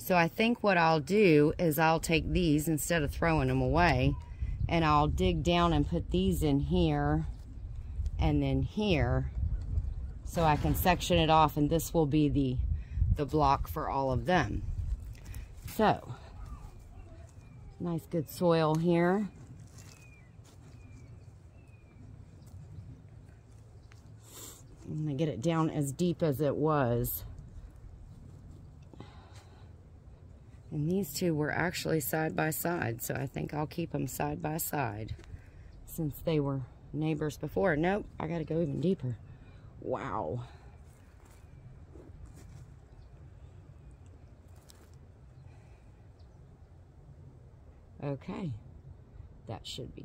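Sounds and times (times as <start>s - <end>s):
low steady hum: 0.0s - 50.0s
steady low rumble: 0.0s - 50.0s.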